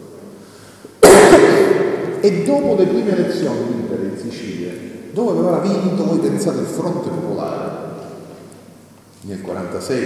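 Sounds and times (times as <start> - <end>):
man coughing into a microphone: 1.0 - 1.8.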